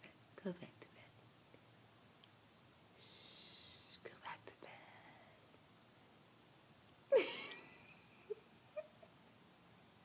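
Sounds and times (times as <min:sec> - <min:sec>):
faint whispering: 0:00.0 - 0:01.2, 0:03.0 - 0:05.5.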